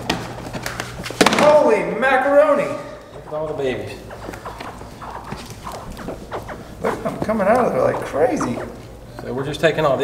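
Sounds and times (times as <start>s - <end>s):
hatchling alligators chirping: 2.4s - 9.5s.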